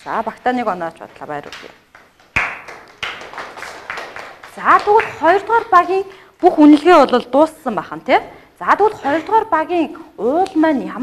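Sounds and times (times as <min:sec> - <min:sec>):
people clapping: 0:01.5 - 0:06.0.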